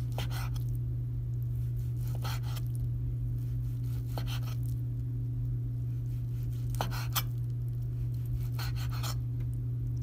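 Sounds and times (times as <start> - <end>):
steady low hum: 0.0 - 10.0
knife slicing onto cutting board: 1.8 - 2.7, 3.8 - 4.7, 6.3 - 7.4, 8.4 - 9.2.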